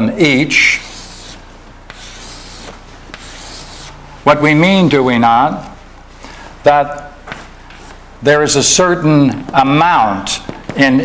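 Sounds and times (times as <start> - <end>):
chalk scratching on chalkboard: 0.7 - 4.0.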